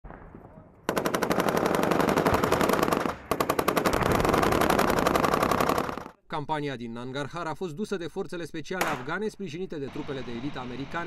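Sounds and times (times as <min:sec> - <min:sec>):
automatic machine-gun fire: 0:00.9 - 0:06.2.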